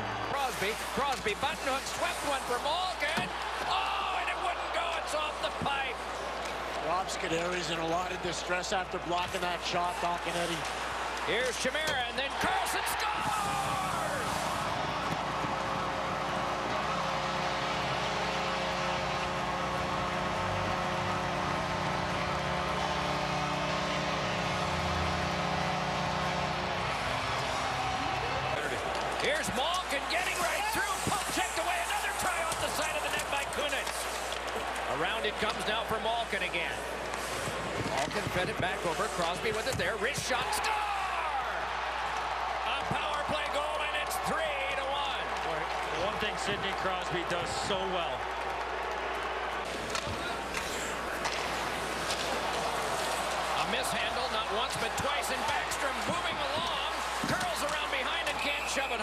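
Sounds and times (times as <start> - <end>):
crowd cheering: 0.0 - 59.0
skates and sticks scraping ice: 0.3 - 5.6, 9.3 - 19.2, 28.7 - 41.0, 49.6 - 59.0.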